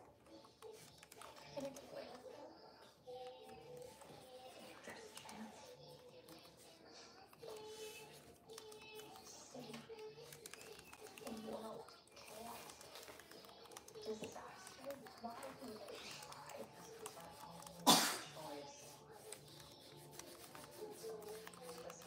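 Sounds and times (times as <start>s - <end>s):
faint indistinct voices: 0.0s - 22.0s.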